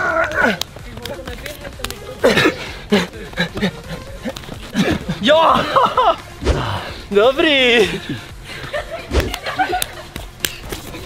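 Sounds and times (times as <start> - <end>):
men grunting and exclaiming: 0.0 - 10.1.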